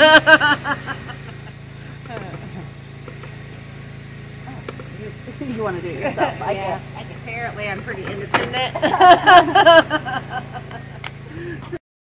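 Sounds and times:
faint laughter: 0:00.0 - 0:01.6, 0:08.8 - 0:11.8
motor humming: 0:00.0 - 0:11.8.

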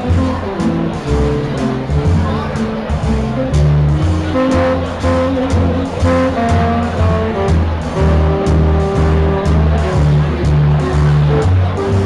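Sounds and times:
bass line: 0:00.0 - 0:12.0
horns holding notes: 0:00.0 - 0:12.0
saxophone playing: 0:00.0 - 0:12.0.

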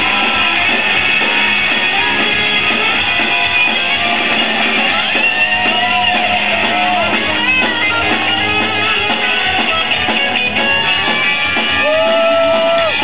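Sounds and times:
electric guitars: 0:00.0 - 0:13.0
live rock band: 0:00.0 - 0:13.0.

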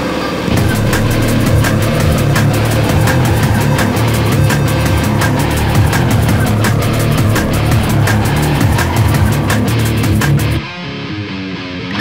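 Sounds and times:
instrumental guitar rock: 0:00.5 - 0:12.0.

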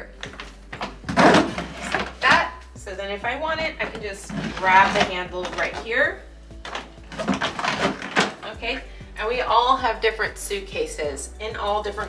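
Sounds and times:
suitcase knocking: 0:00.2 - 0:02.5, 0:03.4 - 0:06.0, 0:06.6 - 0:08.8
suitcase scraping: 0:00.2 - 0:02.6, 0:03.3 - 0:08.8.

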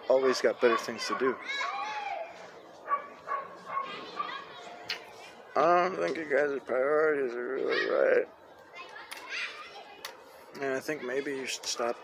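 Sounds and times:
dog barking: 0:02.9 - 0:04.4.

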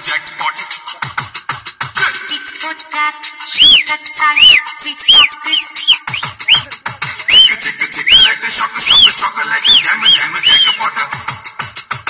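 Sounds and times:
upbeat dance music: 0:03.4 - 0:11.6
high whistle-like notes: 0:03.5 - 0:10.8.

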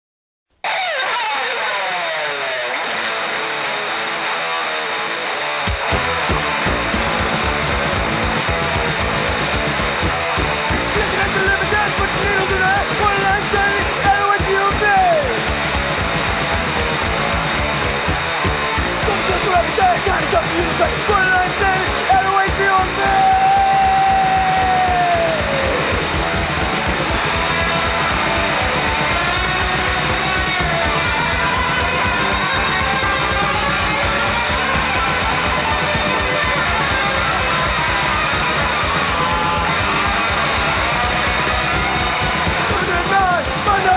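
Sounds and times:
distorted electric guitar: 0:00.5 - 0:43.9
hardcore punk band playing: 0:00.6 - 0:43.9
bass guitar: 0:00.7 - 0:43.9
driving kick drum: 0:05.7 - 0:43.9.

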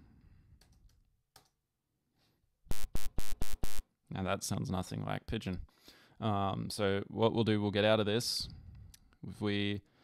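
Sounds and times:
buzzy synth notes: 0:02.7 - 0:03.8.

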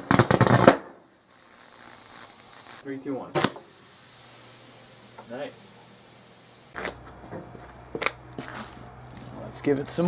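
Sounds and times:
steady low hum: 0:01.0 - 0:10.0.

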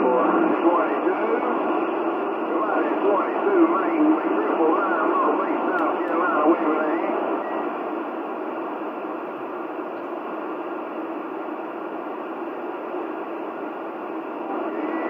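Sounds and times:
radio static hiss: 0:00.0 - 0:15.0.

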